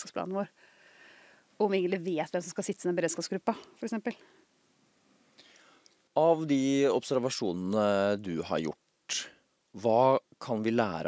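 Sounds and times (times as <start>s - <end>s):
woman speaking: 0.0s - 0.5s, 1.6s - 4.2s
faint in-breath: 0.5s - 1.6s, 5.3s - 6.0s.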